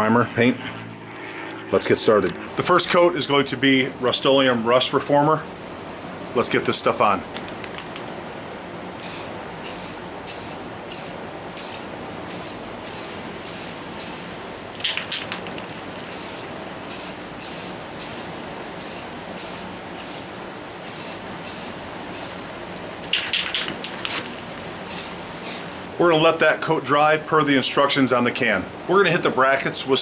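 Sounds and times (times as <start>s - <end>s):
aerosol can spraying: 9.0s - 15.3s, 16.0s - 22.4s, 24.9s - 25.7s.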